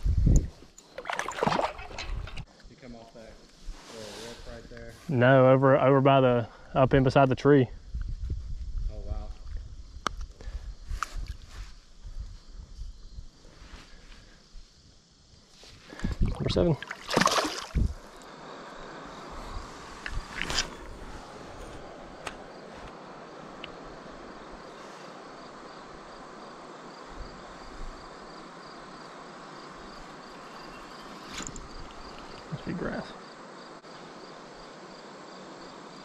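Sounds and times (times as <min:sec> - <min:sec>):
crickets chirping: 0:00.0 - 0:36.0
soft constant hiss: 0:12.8 - 0:36.0.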